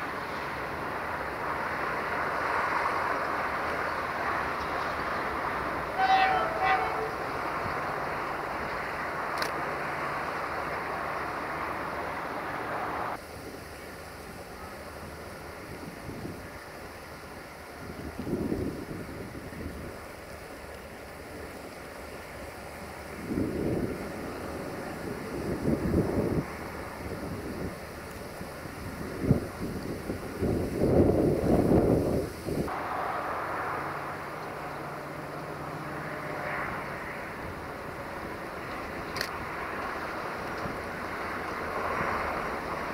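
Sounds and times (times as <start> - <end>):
steady hiss: 0.0 - 42.9
wind buffeting a microphone: 17.8 - 20.1, 23.0 - 32.7.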